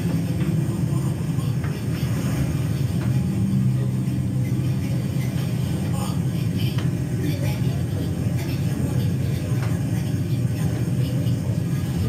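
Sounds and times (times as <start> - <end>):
vehicle rumble through speakers: 0.0 - 12.0.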